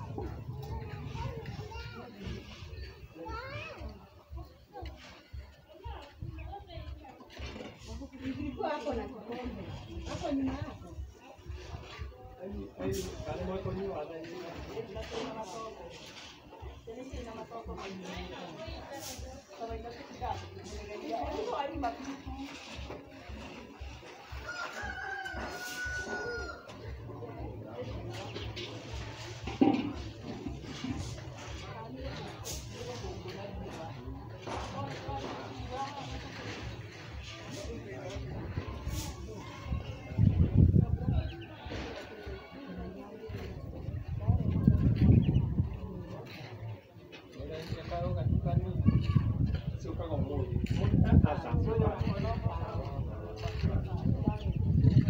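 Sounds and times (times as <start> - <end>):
children talking and calling: 0.0 - 55.0
rooster crowing: 24.5 - 26.7.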